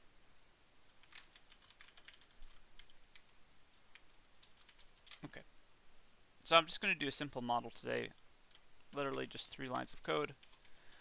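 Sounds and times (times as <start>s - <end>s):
typing on computer keyboard: 0.2s - 3.3s, 3.9s - 5.2s.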